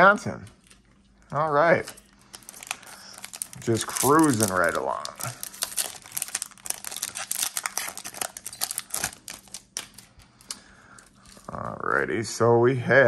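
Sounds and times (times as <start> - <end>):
foil card pack crinkling: 2.1 - 11.6.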